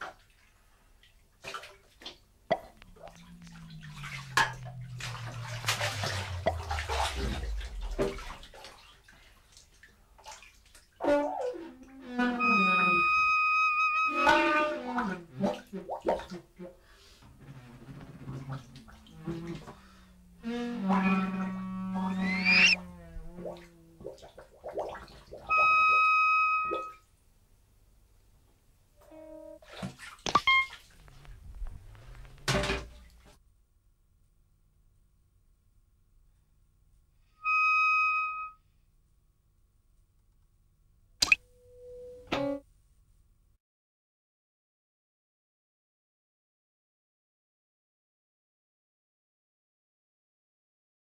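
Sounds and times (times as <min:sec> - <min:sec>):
bath water sounds: 0:00.0 - 0:13.1, 0:14.2 - 0:26.1, 0:29.6 - 0:33.4, 0:41.2 - 0:41.4
low pitch sliding down: 0:02.5 - 0:08.6, 0:17.3 - 0:24.3
pitch sweeping upward: 0:02.6 - 0:08.5, 0:18.2 - 0:24.0
reed and brass notes: 0:02.6 - 0:08.5, 0:17.2 - 0:24.3
steady high tone: 0:19.0 - 0:23.9.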